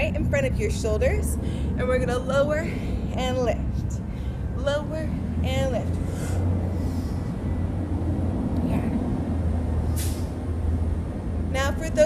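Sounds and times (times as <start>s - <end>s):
vehicle rumble: 0.0s - 12.0s
sharp hiss: 9.9s - 10.4s.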